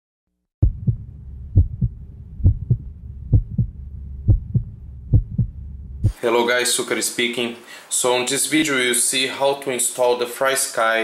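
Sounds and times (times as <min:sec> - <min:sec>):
heartbeat thumps: 0:00.6 - 0:06.2.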